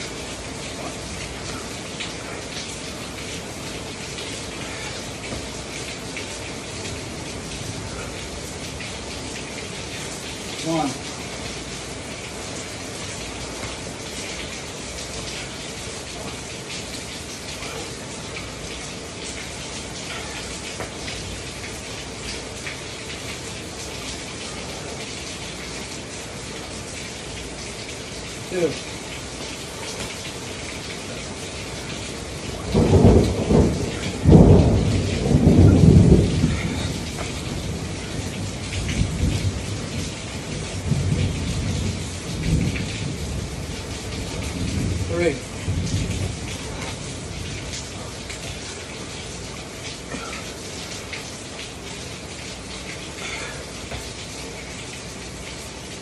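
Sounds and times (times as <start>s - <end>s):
heavy rain: 0.0s - 56.0s
thunder rumbling: 30.7s - 48.7s.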